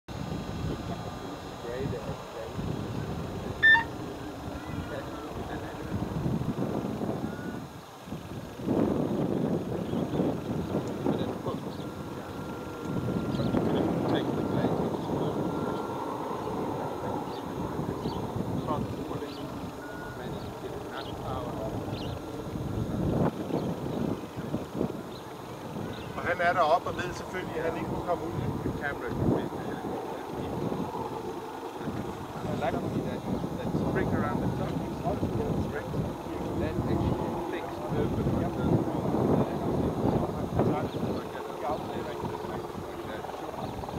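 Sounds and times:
distant helicopter flying: 0.1 - 43.9
short electronic beep: 3.6 - 3.9.

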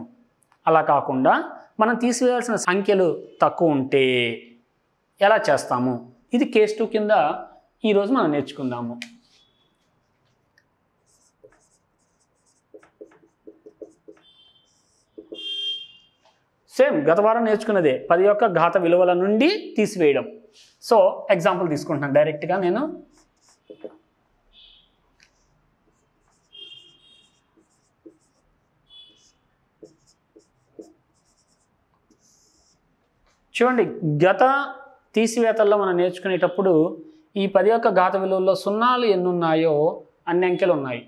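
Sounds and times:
marker scratching on whiteboard: 8.6 - 16.2, 22.6 - 33.5.

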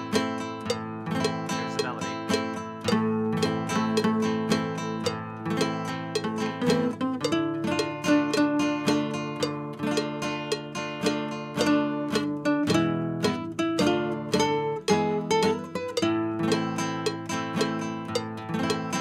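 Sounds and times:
plucked guitar melody: 0.0 - 19.0
strummed guitar chords: 0.0 - 19.0.

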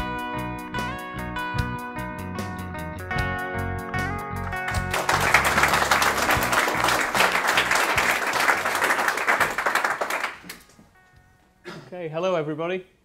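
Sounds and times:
audience applauding: 4.4 - 10.8.

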